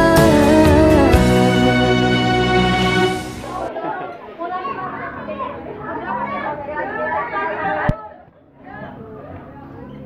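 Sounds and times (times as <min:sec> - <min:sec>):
crowd chattering: 0:01.2 - 0:10.0.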